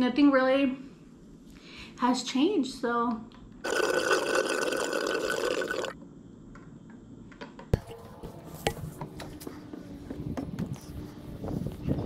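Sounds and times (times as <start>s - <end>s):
water sucked through straw: 3.6s - 6.0s.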